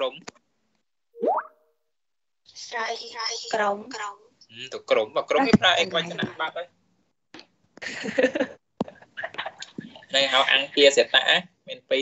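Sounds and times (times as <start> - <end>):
rising electronic bloop: 1.2 - 1.5.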